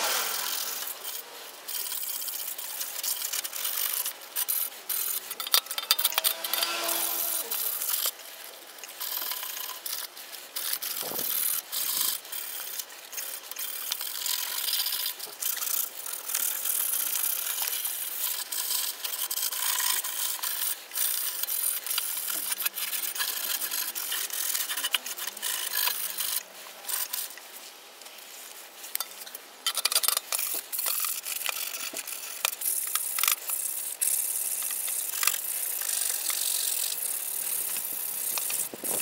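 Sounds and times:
sandpaper scrubbing metal: 0:00.0 - 0:08.4, 0:09.0 - 0:27.4.

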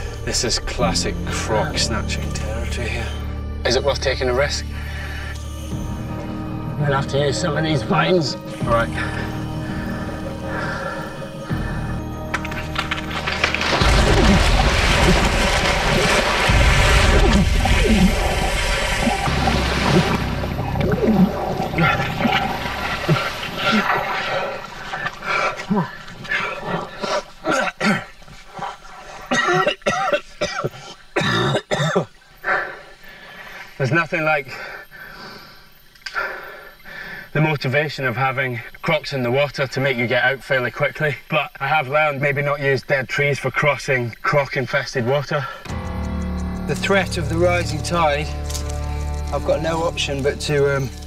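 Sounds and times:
dramatic background music: 0:00.0 - 0:25.0, 0:45.7 - 0:51.0
short splashes and knocks: 0:12.4 - 0:24.2
heavy splashing in water: 0:12.8 - 0:25.1.

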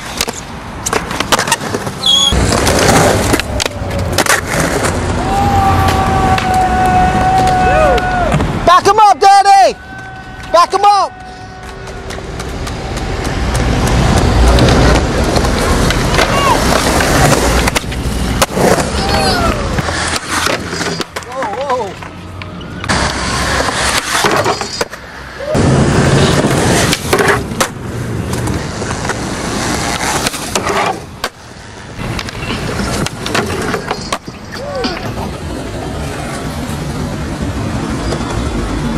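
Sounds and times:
skateboard wheels rolling on concrete: 0:00.0 - 0:38.9
voices shouting: 0:05.0 - 0:12.3, 0:16.1 - 0:16.9, 0:18.8 - 0:19.9
skateboard clacks: 0:05.8 - 0:08.6, 0:09.9 - 0:25.0, 0:26.2 - 0:35.4.

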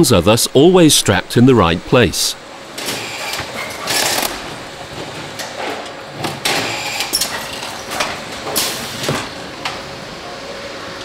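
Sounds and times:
strapping machine running: 0:02.8 - 0:04.5.

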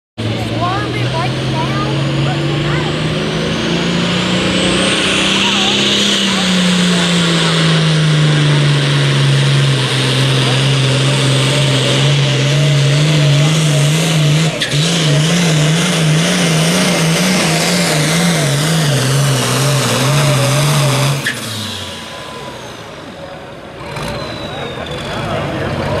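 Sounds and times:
engine revving under heavy load: 0:00.2 - 0:26.0.

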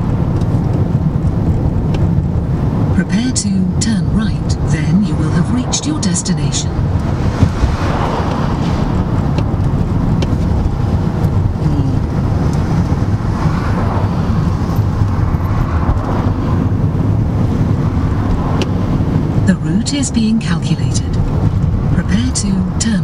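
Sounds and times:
car cabin road and engine rumble: 0:00.0 - 0:23.0.

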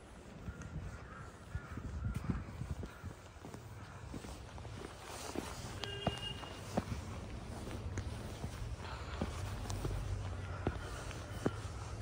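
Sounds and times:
footsteps on stone steps: 0:00.0 - 0:12.0
crows cawing: 0:00.2 - 0:06.8, 0:08.2 - 0:12.0.

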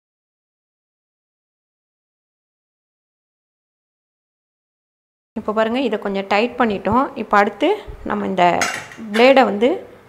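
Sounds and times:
woman speaking: 0:05.4 - 0:10.0.

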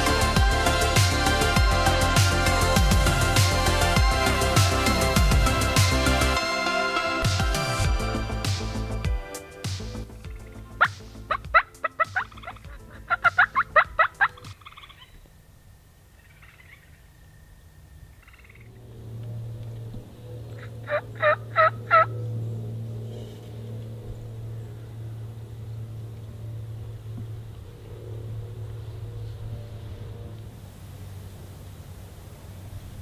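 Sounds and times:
steady low hum: 0:00.0 - 0:33.0
turkey gobbling: 0:10.3 - 0:15.3, 0:16.2 - 0:17.6, 0:18.2 - 0:18.7, 0:19.7 - 0:22.3.

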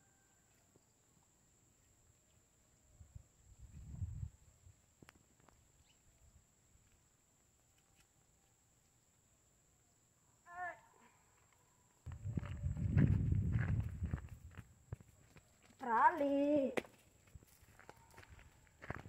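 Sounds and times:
low rumbling noise: 0:12.1 - 0:14.6.

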